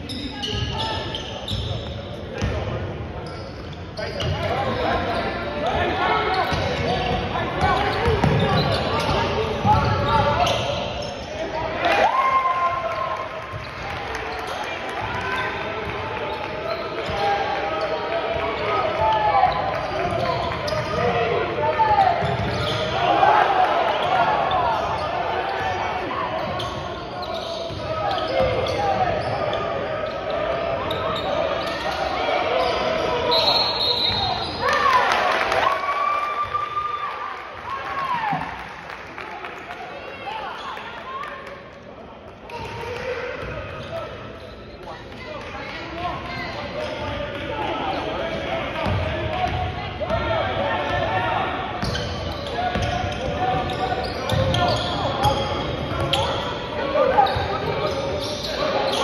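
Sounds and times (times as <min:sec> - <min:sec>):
shoes squeaking on floor: 0:00.0 - 0:02.5, 0:03.2 - 0:11.4, 0:16.2 - 0:18.0, 0:22.1 - 0:23.0, 0:24.0 - 0:34.7, 0:51.8 - 0:59.0.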